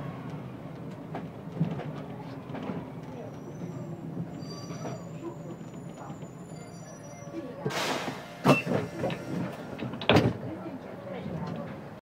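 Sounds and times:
bus engine drone: 0.0 - 12.0
bus body rattling: 0.7 - 12.0
faint high brake squeal: 3.1 - 9.4.

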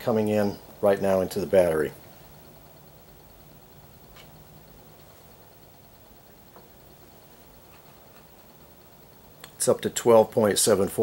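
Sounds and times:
generator humming with fast ticking: 0.0 - 11.0.

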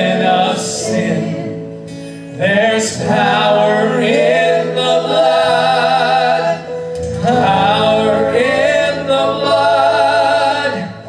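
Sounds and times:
acoustic guitar: 0.0 - 11.0
keyboard: 0.0 - 11.0
man singing a slow hymn: 0.0 - 11.0.

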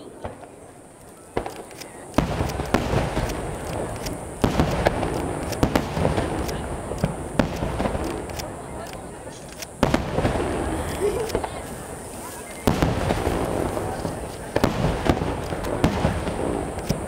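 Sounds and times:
crackling firework embers: 0.0 - 17.0
firework shells booming: 1.3 - 12.0, 12.6 - 17.0.

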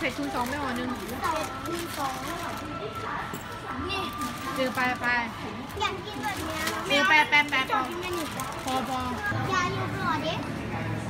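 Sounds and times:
children talking and calling out: 0.2 - 4.9, 5.6 - 10.8.

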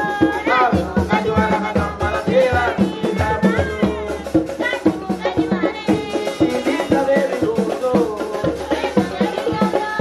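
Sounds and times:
drums beating quick rhythm: 0.0 - 10.0
group singing: 0.0 - 10.0.

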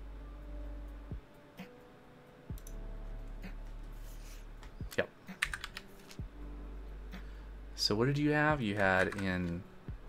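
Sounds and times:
computer keyboard typing: 5.4 - 5.9, 8.8 - 9.6.

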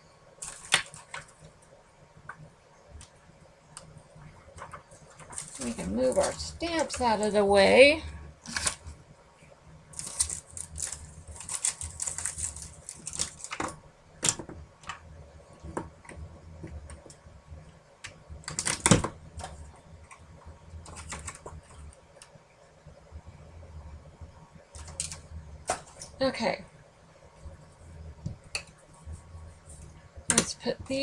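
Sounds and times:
faint low hum: 0.0 - 31.0.

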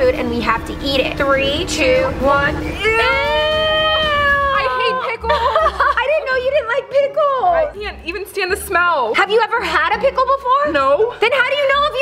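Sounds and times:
women squealing in disgust: 2.8 - 5.6.

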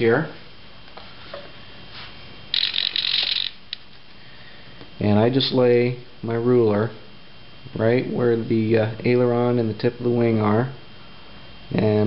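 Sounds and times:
servo whirring: 2.5 - 3.8.

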